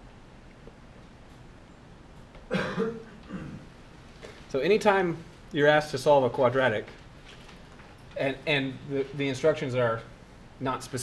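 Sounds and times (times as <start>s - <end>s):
person coughing: 2.5s - 3.7s.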